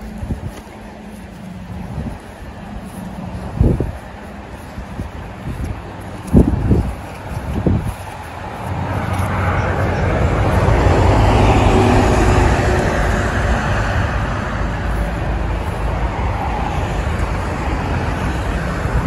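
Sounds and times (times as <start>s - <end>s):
road traffic rumble: 0.0s - 19.0s.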